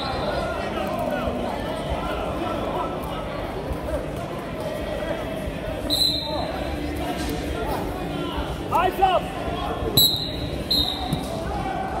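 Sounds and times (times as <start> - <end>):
echoing chatter in hall: 0.0 - 12.0
short high whistle blasts: 5.9 - 6.4, 10.0 - 11.1.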